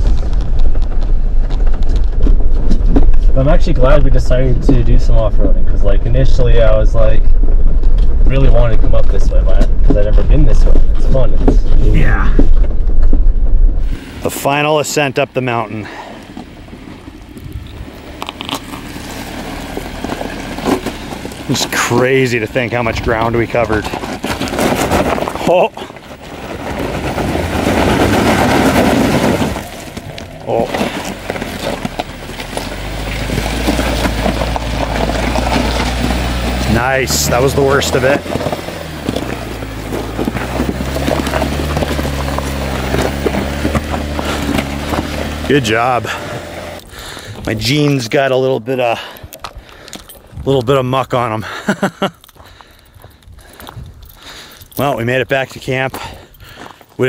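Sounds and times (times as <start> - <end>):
off-road vehicle engine: 0.0 - 57.0
tyres crackling over stones: 0.0 - 57.0.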